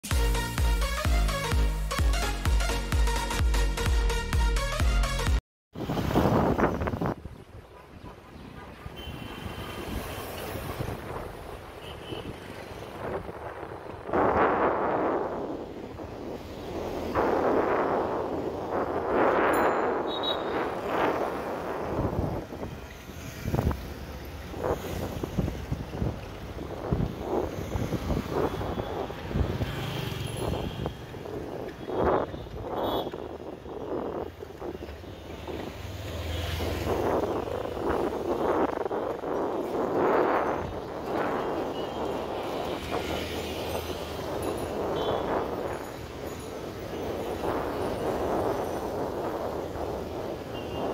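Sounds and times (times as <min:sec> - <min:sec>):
street traffic: 0:00.0 - 0:50.9
wind on microphone: 0:05.8 - 0:50.9.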